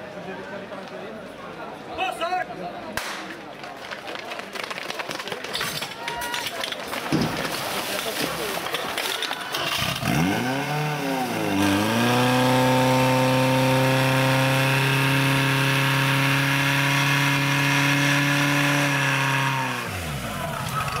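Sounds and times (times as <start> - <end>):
pump engine at high revs: 9.5 - 21.0.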